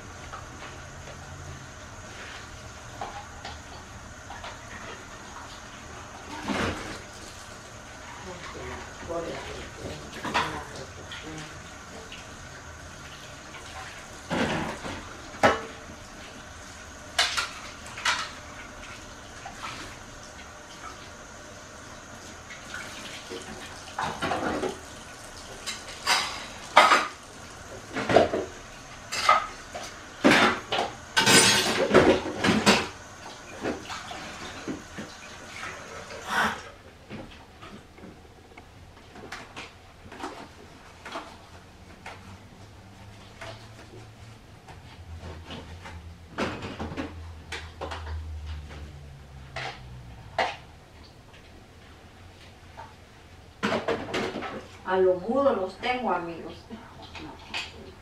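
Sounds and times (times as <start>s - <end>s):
dishes and cutlery clattering: 25.6s - 27.2s, 31.2s - 32.9s.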